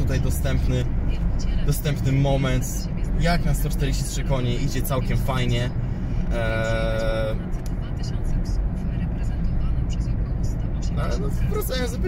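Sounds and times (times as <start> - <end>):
car engine and road rumble: 0.0 - 12.0.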